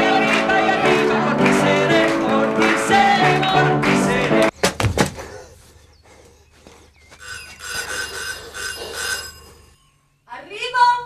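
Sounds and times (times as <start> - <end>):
telephone bell ringing: 7.2 - 10.1.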